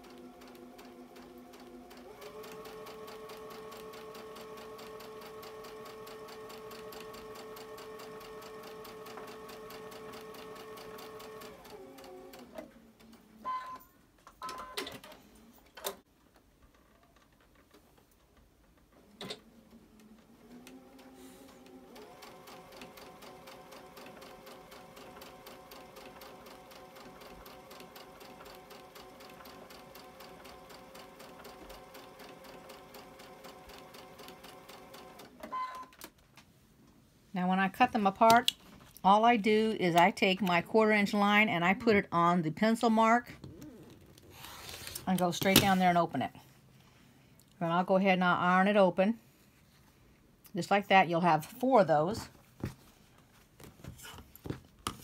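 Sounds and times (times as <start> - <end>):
sewing machine stitching: 0.0 - 13.3, 19.1 - 35.9.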